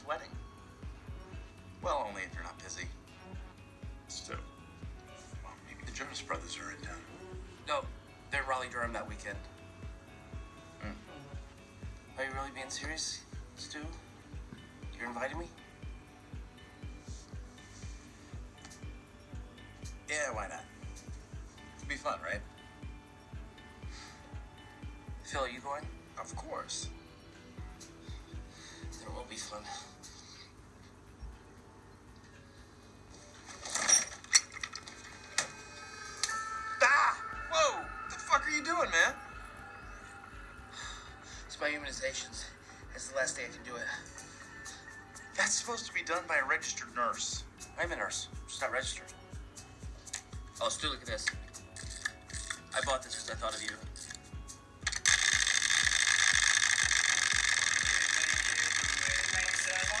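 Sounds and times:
music with steady beat: 9.4 - 20.1, 53.8 - 60.0.

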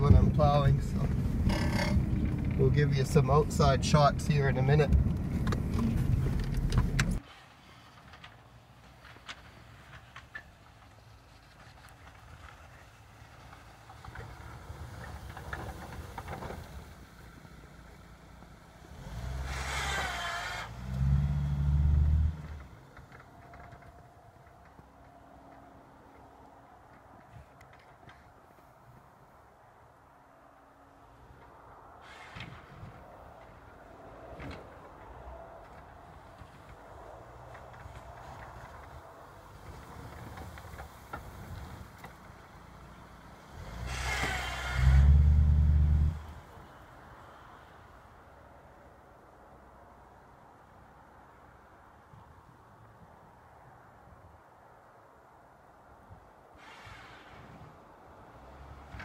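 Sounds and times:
car engine revving: 18.9 - 22.7
plow blade shoving snow: 19.1 - 23.1, 43.4 - 46.3.

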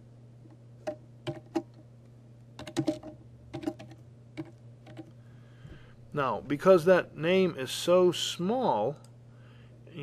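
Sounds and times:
typing on computer keyboard: 1.2 - 1.7, 2.6 - 5.1.

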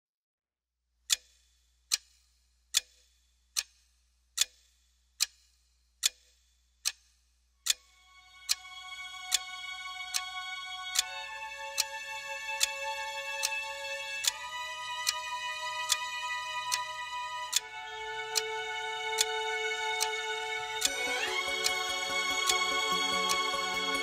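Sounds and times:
clock ticking: 1.1 - 24.0
sustained music chords: 7.9 - 24.0.

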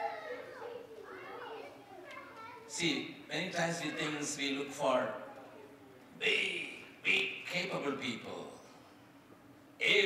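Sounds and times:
young child babbling: 0.0 - 2.7, 5.2 - 6.1.

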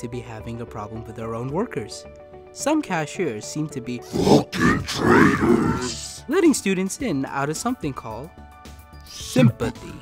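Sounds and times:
deep distorted vocal growl: 4.1 - 6.1.

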